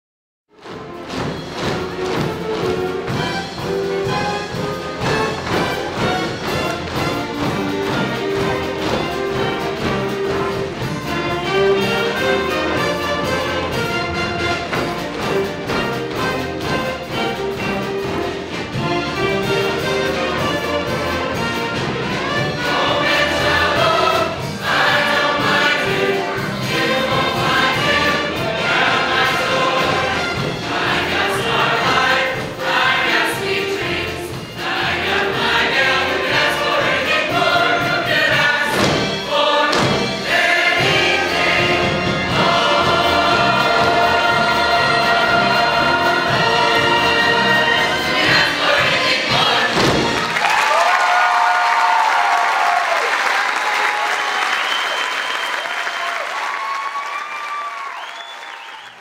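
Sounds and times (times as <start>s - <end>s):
band accompaniment: 0.5s - 51.5s
chorus singing: 0.6s - 50.8s
audience applause and cheering: 49.4s - 59.0s.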